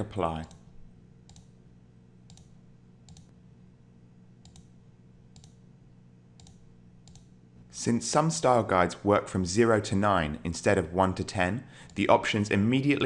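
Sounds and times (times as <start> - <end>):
low steady hum: 0.0 - 13.0
faint computer mouse clicks: 1.3 - 1.5, 2.3 - 2.5, 3.1 - 3.3, 4.4 - 4.7, 5.4 - 5.6, 6.4 - 7.3.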